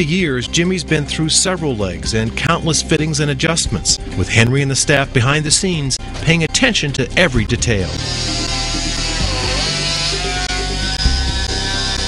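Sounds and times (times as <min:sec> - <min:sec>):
background music: 0:00.0 - 0:12.0
rotary grinder on plastic: 0:08.0 - 0:12.0.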